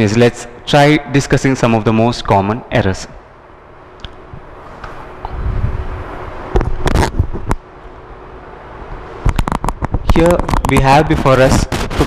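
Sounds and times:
low rumbling: 4.2s - 10.1s.

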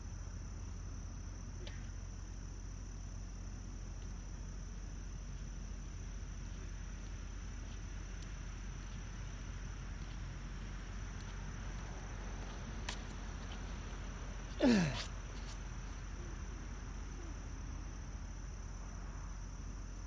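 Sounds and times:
crickets chirping: 0.0s - 20.0s.

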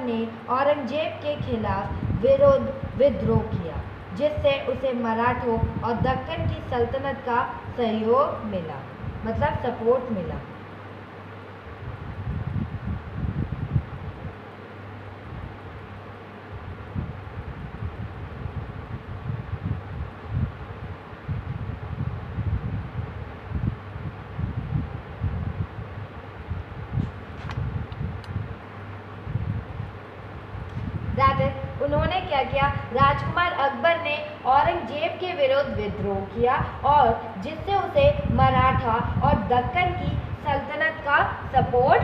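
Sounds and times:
faint steady hum: 0.0s - 42.0s
wind buffeting microphone: 0.1s - 10.5s, 11.6s - 42.0s.

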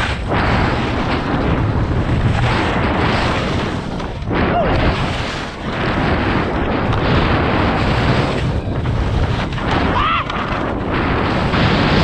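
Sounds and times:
skis scraping on slushy snow: 0.0s - 9.7s
wind rushing over microphone: 0.0s - 12.0s.

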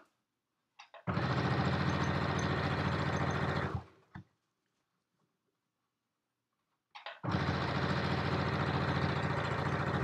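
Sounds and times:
sewing machine stitching: 0.8s - 4.2s, 7.0s - 10.0s.

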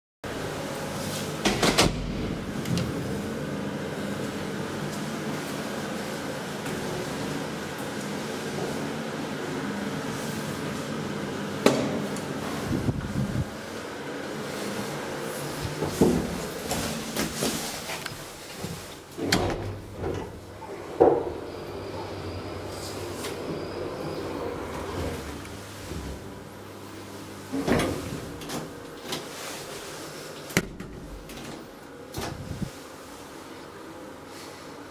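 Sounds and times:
elevator machinery hum: 0.3s - 34.9s.

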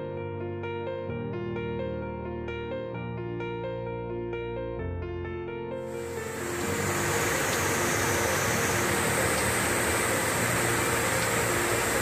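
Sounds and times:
soft background music: 0.0s - 12.0s
stream rushing over rocks: 6.0s - 12.0s.

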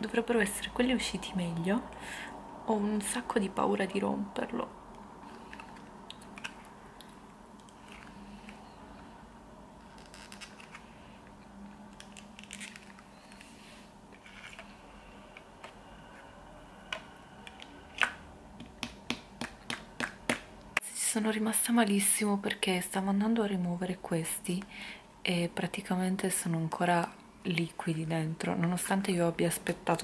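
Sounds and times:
low background hum: 0.0s - 30.0s
plastic mould crinkling and clicking: 9.8s - 13.6s.

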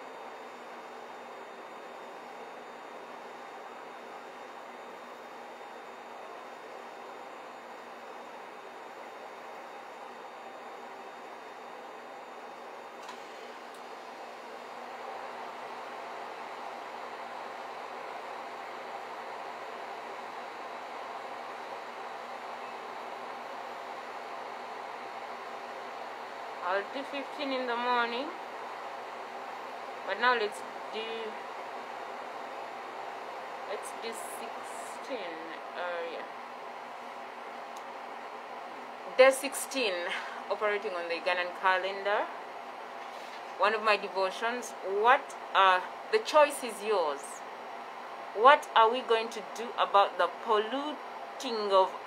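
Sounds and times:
faint hum: 0.0s - 52.0s
room noise hiss: 0.0s - 52.0s.

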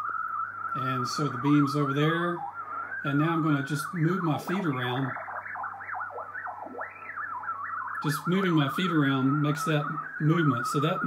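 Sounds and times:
warbling receiver tone: 0.0s - 11.0s.

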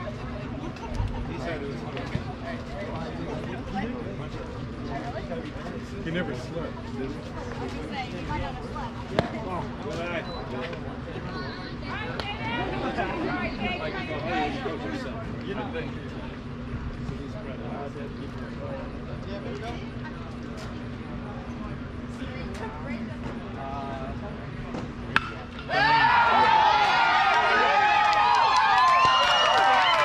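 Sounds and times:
faint crowd chatter: 0.0s - 30.0s
bat hitting baseball: 25.1s - 25.7s
spectators cheering and yelling: 25.6s - 30.0s.

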